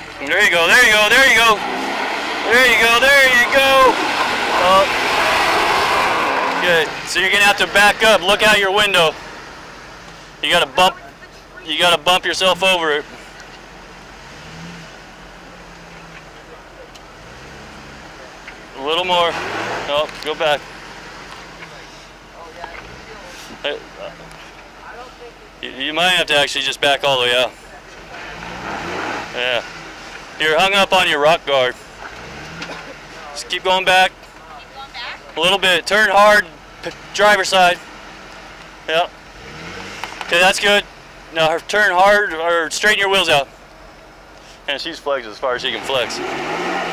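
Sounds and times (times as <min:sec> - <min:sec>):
car engine running at low revs: 0:00.0 - 0:46.9.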